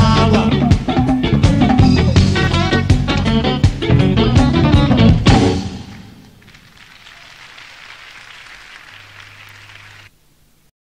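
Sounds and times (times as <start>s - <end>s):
audience applauding: 5.8s - 10.1s.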